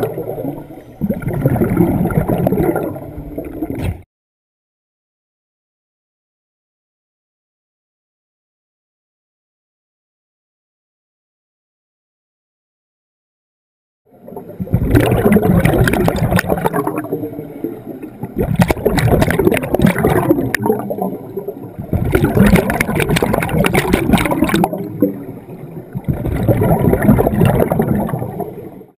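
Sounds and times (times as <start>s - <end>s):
underwater bubbles gurgling: 0.0s - 4.0s, 14.1s - 29.0s.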